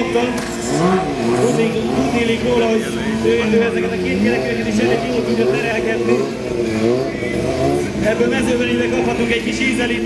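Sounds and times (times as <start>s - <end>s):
quad bike engine revving: 0.0s - 10.0s.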